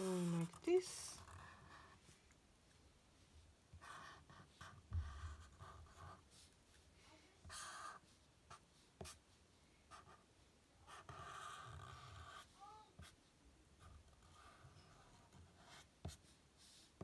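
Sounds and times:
marker scratching on paper: 3.7s - 6.8s, 7.4s - 9.3s, 9.9s - 10.2s, 10.8s - 17.0s.

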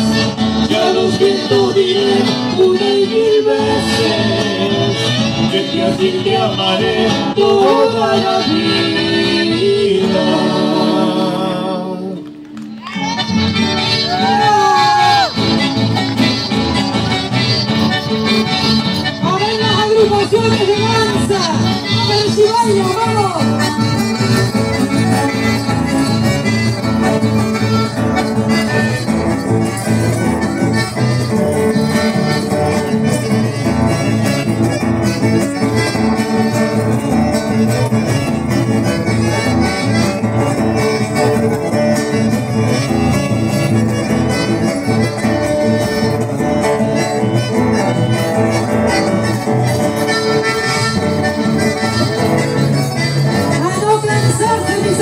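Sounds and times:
accordion: 0.0s - 55.0s
acoustic guitars playing: 0.0s - 55.0s.

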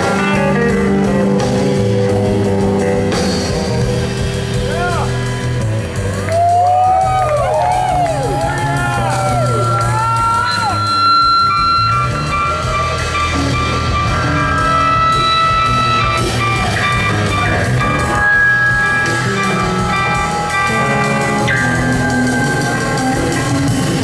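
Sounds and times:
electric guitar bending notes: 0.0s - 6.3s, 7.7s - 24.0s
bass: 0.0s - 24.0s
drums: 0.0s - 24.0s.

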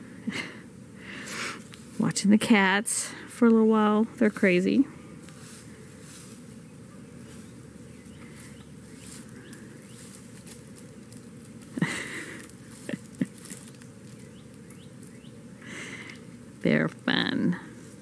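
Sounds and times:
cats rustling in dry leaves: 1.3s - 2.2s, 4.2s - 18.0s
scrabbling at tree trunk: 7.2s - 15.3s.

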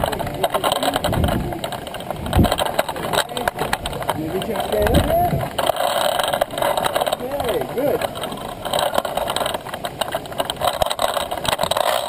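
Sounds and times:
person's voice: 0.0s - 1.8s, 2.8s - 5.6s, 7.0s - 8.1s
outdoor background rumble: 0.0s - 12.0s.

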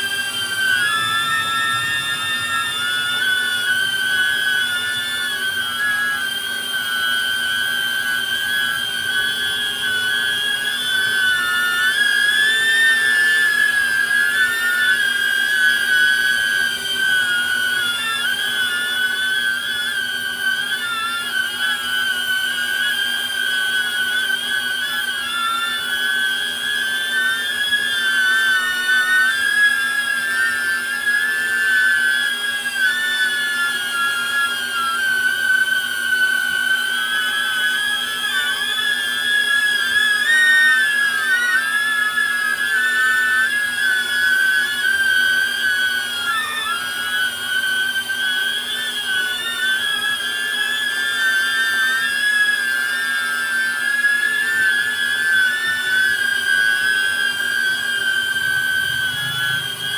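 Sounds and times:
drone high-pitched whine: 0.0s - 59.9s.

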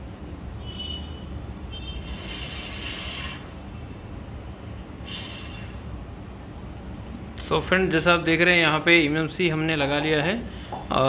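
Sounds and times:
low hum of equipment: 0.0s - 11.0s
short bursts of hiss: 2.0s - 3.5s, 5.0s - 5.8s.

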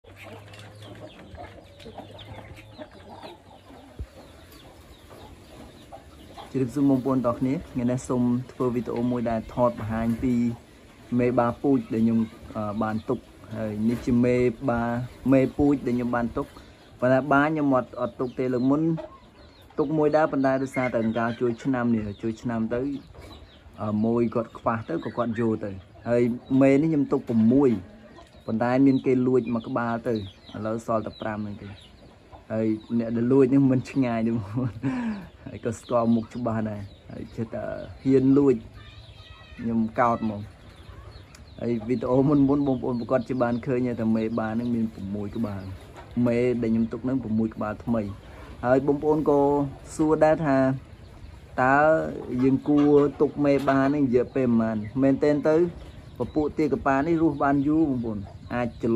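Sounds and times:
chickens and ducks clucking: 0.0s - 58.9s
man's voice: 6.5s - 19.1s, 19.8s - 23.2s, 39.6s - 40.6s, 41.5s - 50.9s, 51.6s - 58.9s.

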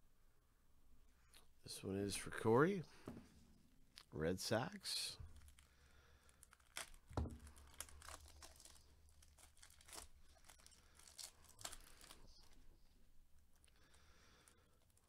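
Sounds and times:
plastic sleeve crinkling: 5.2s - 15.0s.

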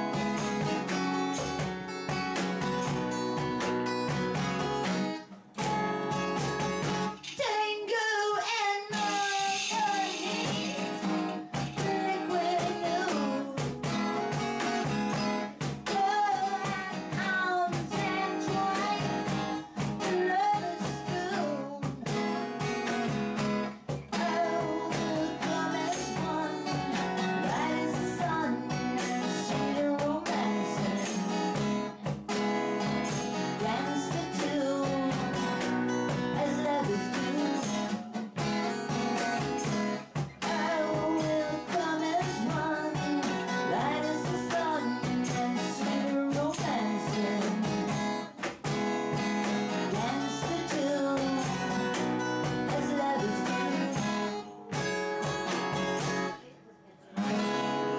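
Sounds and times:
acoustic guitar strumming: 0.0s - 7.5s, 8.9s - 56.5s, 57.1s - 57.9s
woman singing: 6.9s - 22.3s, 24.0s - 32.0s, 32.8s - 38.8s, 40.4s - 48.3s, 49.2s - 54.9s.

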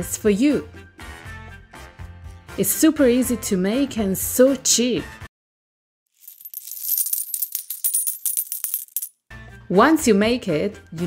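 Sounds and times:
coins dropping into glass jar: 6.2s - 9.1s.

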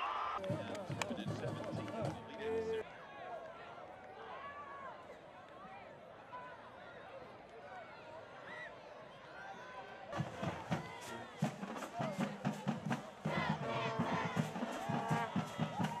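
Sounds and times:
crowd murmur: 0.0s - 16.0s
cheerleaders shouting and chanting: 9.4s - 16.0s
music with steady beat: 10.2s - 16.0s.

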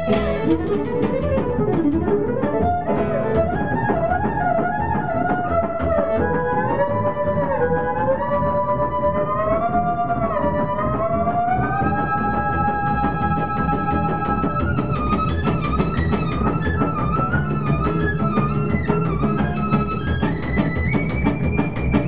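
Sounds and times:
rhythm guitar chords: 0.0s - 7.9s
plucked upright bass: 0.0s - 22.0s
violin melody: 0.0s - 22.0s.

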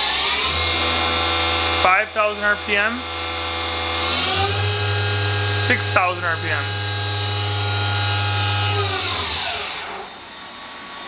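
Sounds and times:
machine spindle whining: 0.0s - 10.5s
low hum: 0.5s - 9.6s.

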